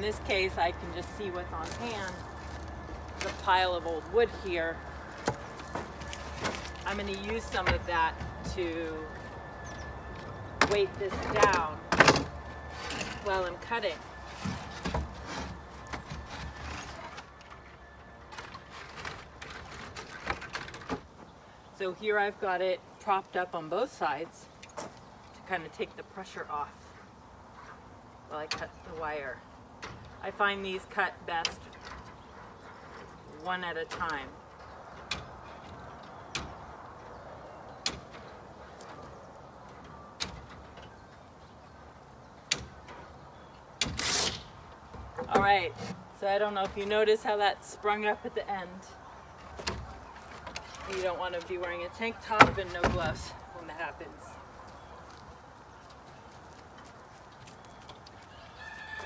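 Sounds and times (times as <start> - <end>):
wooden boards knocking and scraping: 18.3 - 21.3, 52.2 - 53.3.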